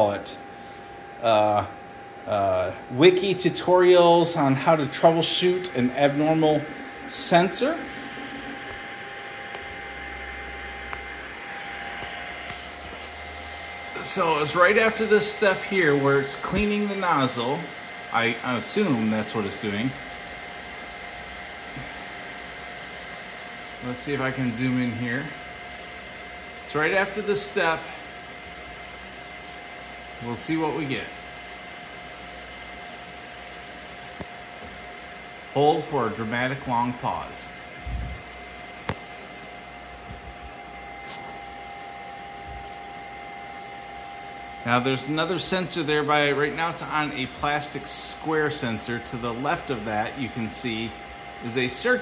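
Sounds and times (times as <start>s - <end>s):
faint steady whine: 0.0s - 52.0s
printer cooling fans whirring: 0.0s - 52.0s.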